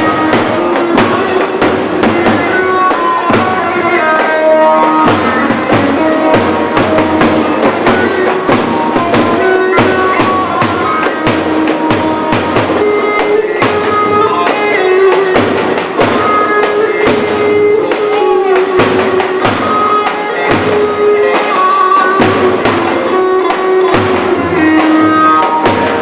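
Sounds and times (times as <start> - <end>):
melody of long held notes: 0.0 - 26.0.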